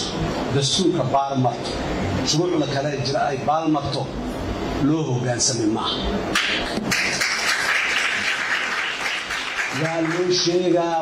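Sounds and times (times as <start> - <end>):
audience applause: 6.9 - 10.5.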